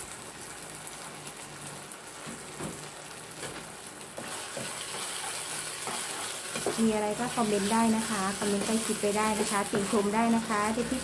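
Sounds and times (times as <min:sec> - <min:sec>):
food sizzling in a frying pan: 0:00.0 - 0:11.0
spatula scraping a pan: 0:04.2 - 0:11.0.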